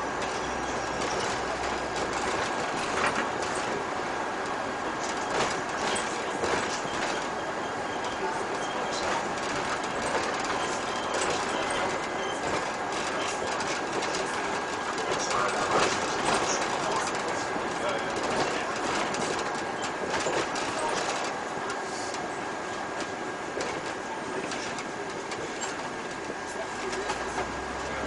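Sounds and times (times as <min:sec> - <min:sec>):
bus road and engine noise: 0:00.0 - 0:28.0.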